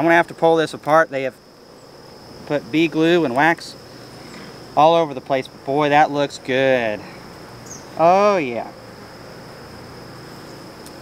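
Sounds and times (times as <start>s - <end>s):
bees buzzing: 1.4s - 11.0s.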